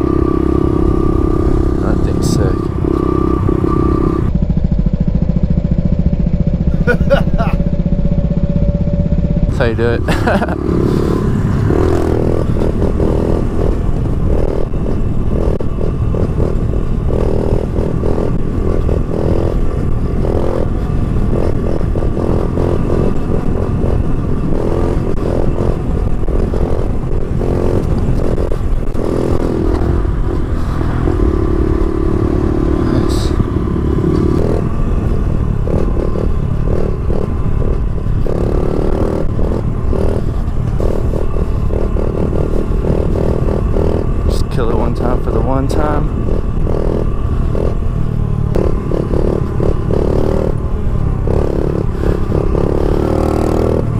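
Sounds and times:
motorbike engine revving: 0.0 - 53.9
wind rumble on microphone: 6.6 - 53.9.

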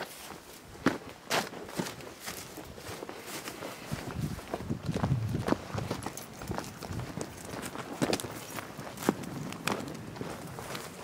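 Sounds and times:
footsteps on dry grass: 0.0 - 11.0.

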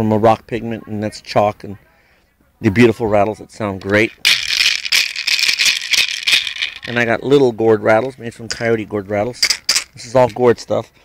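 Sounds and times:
man speaking: 0.0 - 4.4, 6.8 - 11.0
gourd rattle shaken: 3.8 - 8.7, 9.3 - 10.4.

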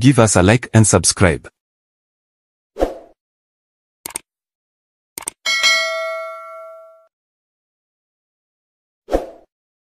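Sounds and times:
notification bell ding: 5.5 - 7.1.

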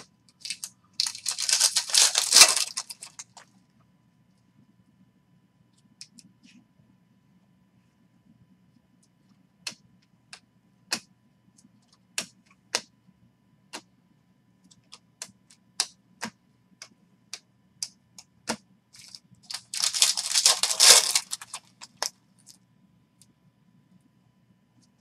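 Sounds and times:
cards sliding rustle: 19.0 - 22.1.

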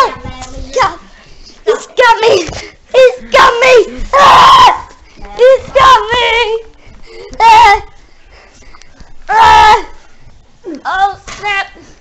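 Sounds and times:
children screaming: 3.4 - 5.0.

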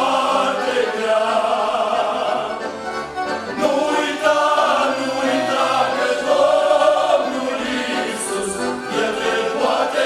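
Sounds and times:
male vocal group singing a hymn: 0.0 - 2.7, 3.5 - 10.0.

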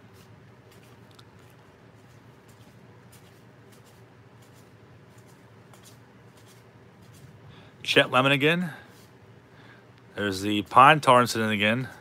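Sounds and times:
low steady hum: 0.0 - 12.0
cards sliding and flicking: 0.2 - 7.3.

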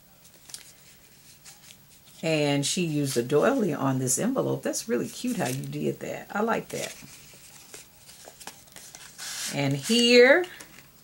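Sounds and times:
paper envelope rustling: 0.2 - 2.2, 5.0 - 5.9, 6.6 - 10.1.

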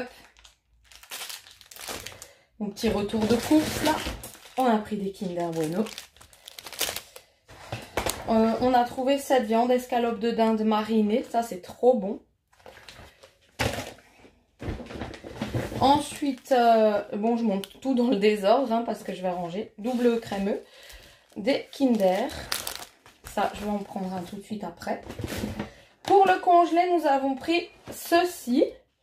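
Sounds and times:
plastic wrappers crinkling: 0.0 - 8.8, 19.8 - 24.5
handling thud and rustle: 14.6 - 16.3.

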